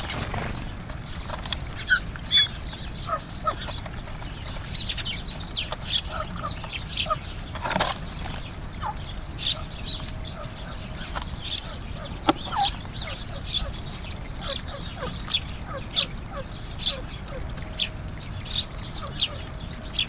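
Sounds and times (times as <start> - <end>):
birds pecking on wooden tray: 0.0 - 20.0
sparrows chirping: 0.0 - 20.0.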